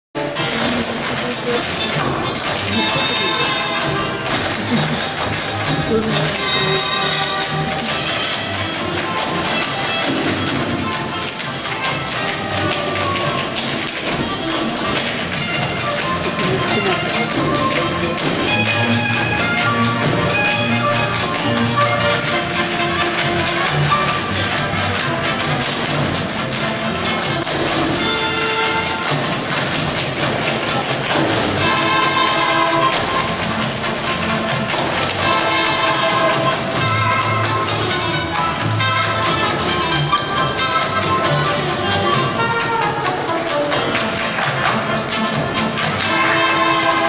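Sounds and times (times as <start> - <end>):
melodic music: 0.2 - 47.0
tap shoes on stage floor: 0.2 - 47.0.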